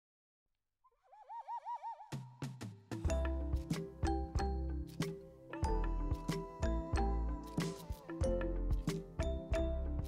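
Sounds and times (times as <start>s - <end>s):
warbling whistle-like tone: 1.1s - 2.2s.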